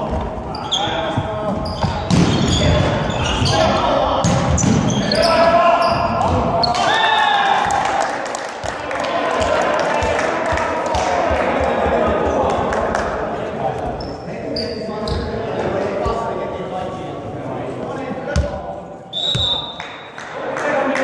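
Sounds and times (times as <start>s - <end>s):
echoing players' voices: 0.0s - 21.0s.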